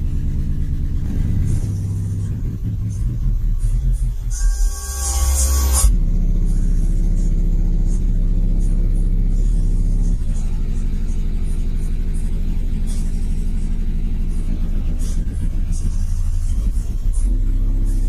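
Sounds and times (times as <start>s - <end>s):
bass-heavy music on car subwoofer: 0.0s - 18.0s.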